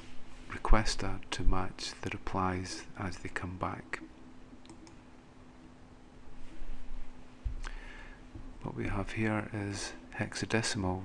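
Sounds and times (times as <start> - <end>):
low steady hum: 0.0 - 11.0
computer mouse clicks: 4.0 - 5.0.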